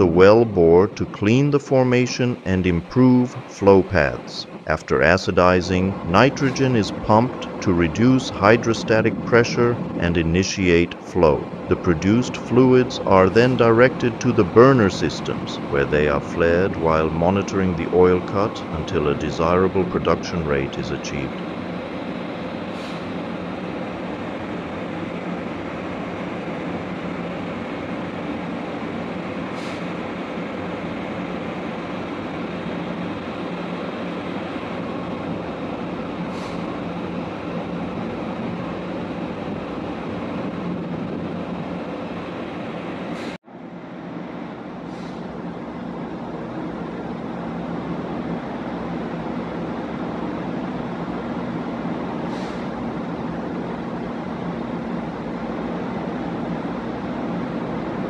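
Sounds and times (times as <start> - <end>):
faint steady hum: 0.0 - 36.2
machinery drone: 0.0 - 58.0.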